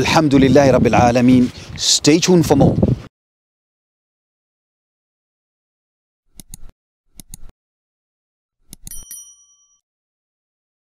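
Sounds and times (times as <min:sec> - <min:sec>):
mouse click: 0:06.3 - 0:07.5
notification bell ding: 0:08.8 - 0:09.8.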